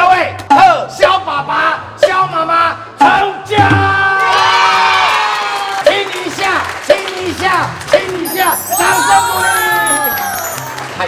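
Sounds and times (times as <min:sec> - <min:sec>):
group of people cheering: 0:04.1 - 0:05.9, 0:08.2 - 0:11.0.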